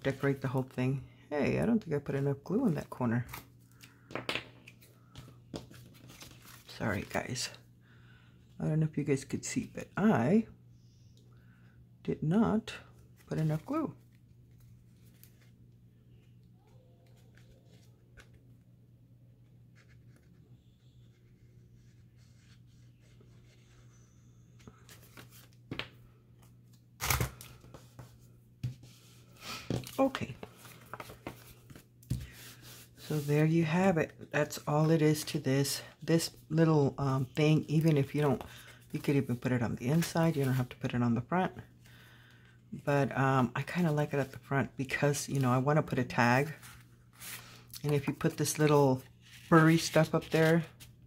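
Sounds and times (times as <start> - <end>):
paper rustling: 4.7 - 7.2, 27.0 - 33.3, 46.4 - 51.0.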